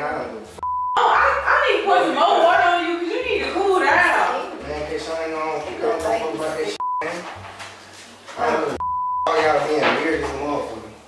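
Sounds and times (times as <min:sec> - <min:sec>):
censor bleep: 0:00.6 - 0:01.0, 0:06.8 - 0:07.1, 0:08.8 - 0:09.4.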